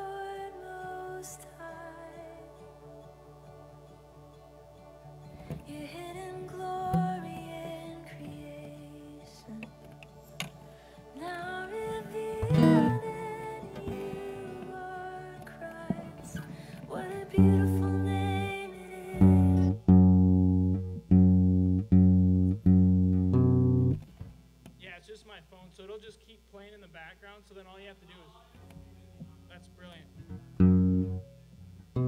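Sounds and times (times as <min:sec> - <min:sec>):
guitar notes and plucks: 0:02.6 - 0:24.8, 0:28.6 - 0:32.0
low keyboard chords: 0:09.5 - 0:24.1, 0:28.7 - 0:32.0.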